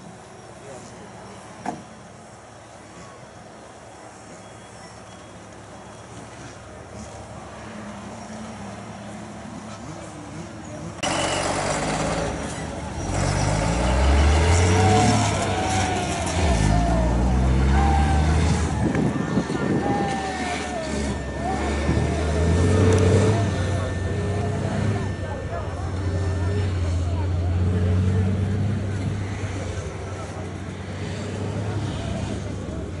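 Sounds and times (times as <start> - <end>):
people's voices: 0.0 - 33.0
diesel truck engine working hard: 5.5 - 33.0.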